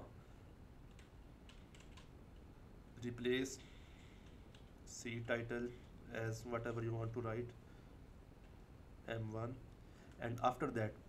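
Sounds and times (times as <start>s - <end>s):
faint keyboard typing: 0.8s - 2.5s, 3.6s - 6.0s.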